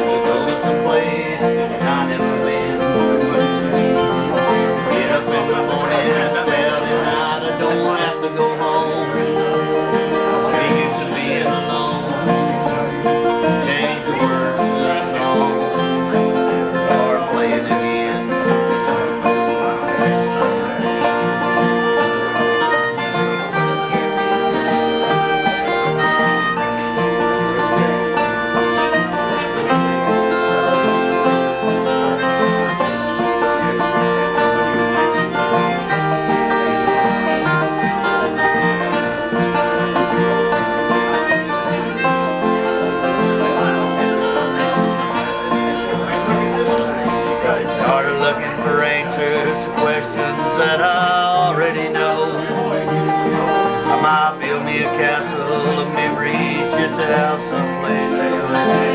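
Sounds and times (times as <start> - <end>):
autoharp: 0.0 - 58.9
banjo: 0.0 - 58.9
harmonica lead: 0.0 - 58.9
strummed acoustic guitar: 0.0 - 58.9.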